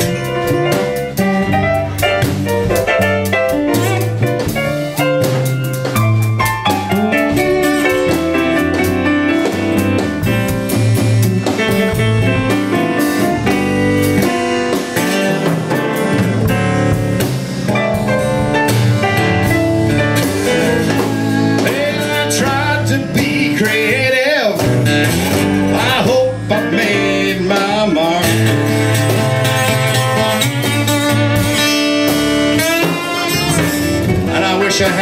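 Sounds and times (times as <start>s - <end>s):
blues band playing: 0.0s - 35.0s
sliding guitar lines: 0.0s - 35.0s.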